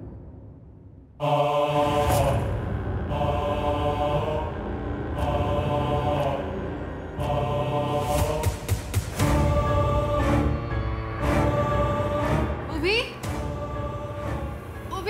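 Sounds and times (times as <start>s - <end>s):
chanted vocal music: 1.2s - 15.0s.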